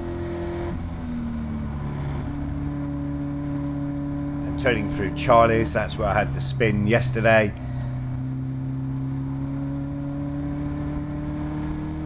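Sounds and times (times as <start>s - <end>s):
race car engine: 0.0s - 12.0s.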